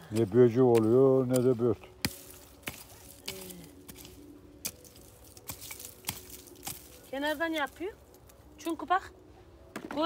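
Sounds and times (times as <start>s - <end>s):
hand hoe chopping into dry soil: 0.0s - 7.7s.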